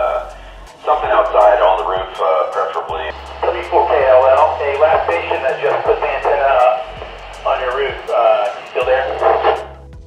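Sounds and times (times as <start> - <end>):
steady low hum: 0.0 - 9.8
tinny radio voice: 0.0 - 9.8.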